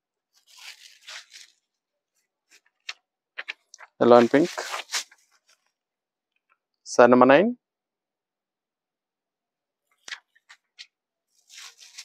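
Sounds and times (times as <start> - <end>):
fabric rustling: 0.3 - 5.8, 10.2 - 12.0.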